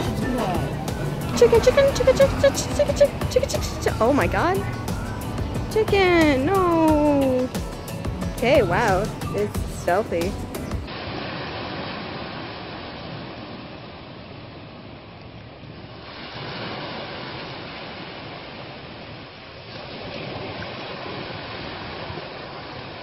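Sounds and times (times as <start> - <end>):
waves breaking on rocks: 10.9 - 14.3, 15.8 - 23.0.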